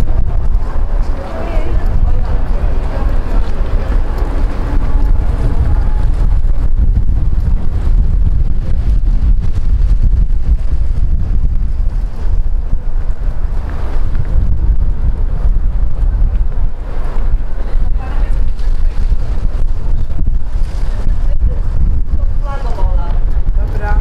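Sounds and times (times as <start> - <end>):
faint voices: 0.0 - 7.0, 16.8 - 24.0
wind buffeting microphone: 0.0 - 24.0.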